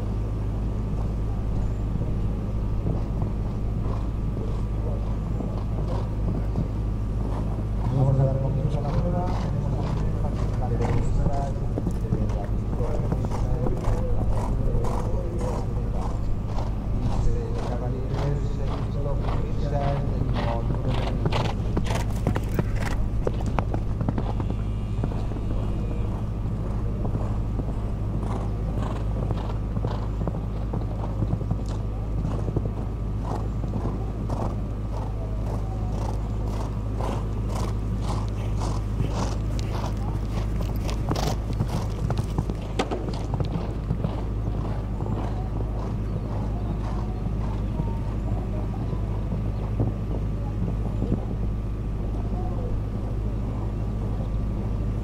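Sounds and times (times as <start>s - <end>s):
steady low hum: 0.0s - 55.0s
horse hoofbeats on sand: 2.0s - 51.7s.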